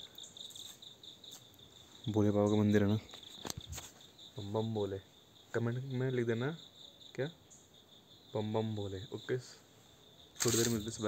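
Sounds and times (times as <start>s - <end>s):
faint insects chirring: 0.0s - 11.0s.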